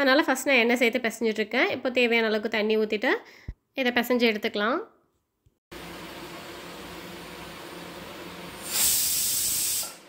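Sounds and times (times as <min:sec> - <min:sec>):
pressure cooker hissing: 0:06.0 - 0:10.0
steam valve whistling blast: 0:08.6 - 0:10.0.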